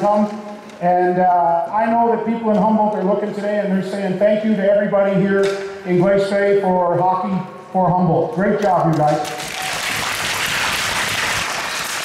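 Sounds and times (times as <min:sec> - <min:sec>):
crowd applauding: 0:09.1 - 0:12.0.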